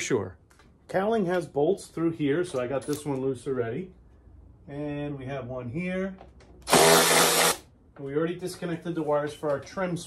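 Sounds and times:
cordless electric ratchet running: 6.7 - 7.6.

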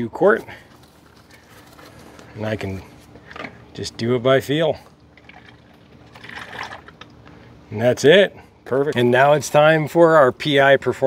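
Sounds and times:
oil pouring through a funnel: 4.7 - 7.5.

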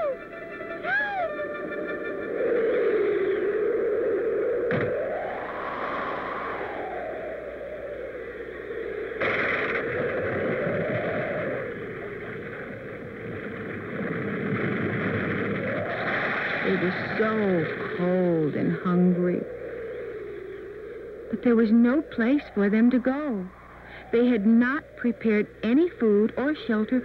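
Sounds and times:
howling blizzard wind: 0.0 - 27.0
wind gust: 0.8 - 26.2.

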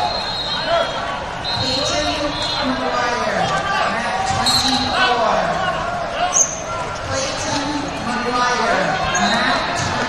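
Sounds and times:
babble of voices in hall: 0.0 - 10.0.

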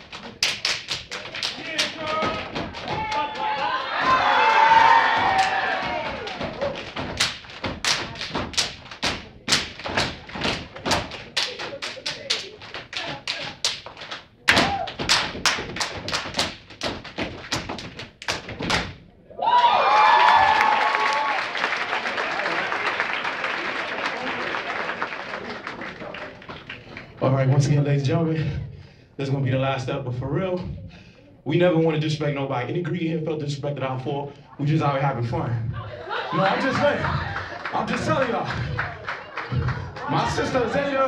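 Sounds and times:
hand claps: 0.0 - 19.0, 37.0 - 40.3
rhythmic foot stomps: 0.0 - 19.1, 36.4 - 41.0
audience applause and cheering: 1.1 - 8.3, 19.4 - 27.2, 36.1 - 41.0.

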